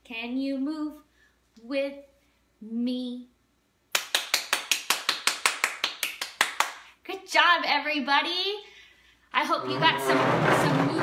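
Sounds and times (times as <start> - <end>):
person clapping: 3.9 - 6.9.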